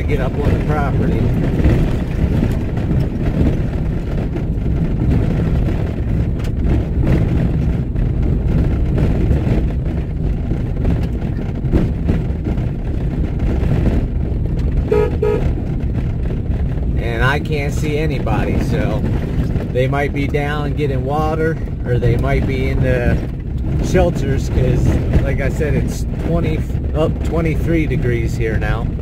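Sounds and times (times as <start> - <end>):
vehicle engine and tyre rumble: 0.0 - 29.0.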